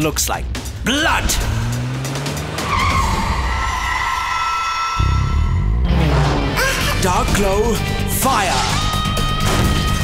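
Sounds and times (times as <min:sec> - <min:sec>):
background music: 0:00.0 - 0:10.0
car engine: 0:00.5 - 0:07.0
cartoon tyres screeching: 0:01.7 - 0:06.6.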